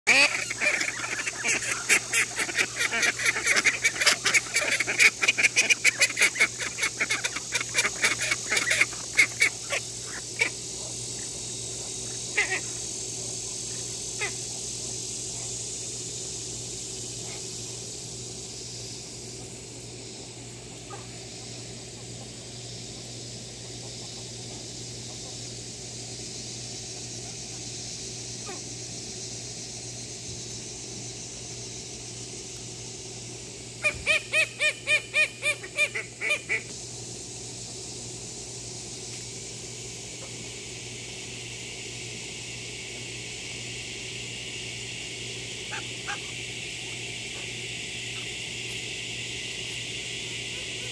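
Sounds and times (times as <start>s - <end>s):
duck quacking: 0.1s - 10.5s
high background hiss: 0.1s - 50.9s.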